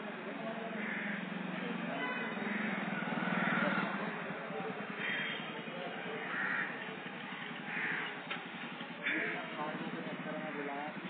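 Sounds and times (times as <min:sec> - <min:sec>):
crows cawing: 0:00.8 - 0:01.3, 0:02.5 - 0:03.9, 0:04.9 - 0:05.5, 0:06.2 - 0:06.9, 0:07.7 - 0:08.2, 0:09.0 - 0:09.5.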